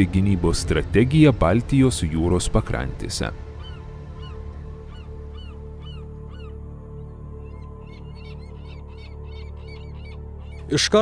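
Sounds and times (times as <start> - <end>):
low droning music: 0.0 - 11.0
birds calling: 2.7 - 11.0.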